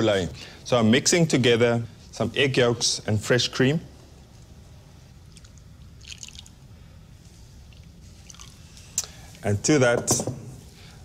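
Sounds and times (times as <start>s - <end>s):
liquid pouring into a bowl: 5.2s - 6.7s, 7.6s - 9.4s.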